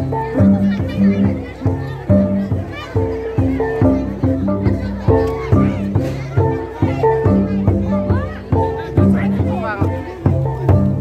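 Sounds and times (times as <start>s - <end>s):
crowd voices: 0.0s - 11.0s
gongs struck rhythmically: 0.0s - 11.0s.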